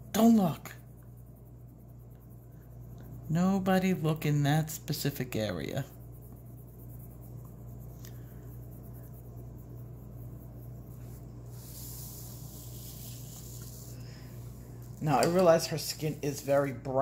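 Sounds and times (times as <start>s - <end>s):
colored pencil shading on paper: 0.0s - 17.0s
steady low hum: 0.0s - 17.0s.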